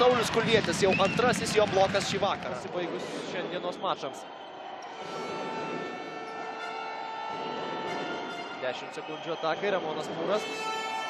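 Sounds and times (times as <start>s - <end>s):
basketball arena noise: 0.0s - 11.0s
held horn tone: 4.9s - 9.3s, 10.0s - 11.0s.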